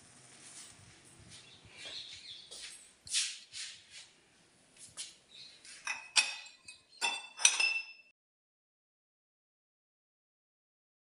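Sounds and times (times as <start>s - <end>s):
metal tumblers clinking: 5.8s - 8.1s.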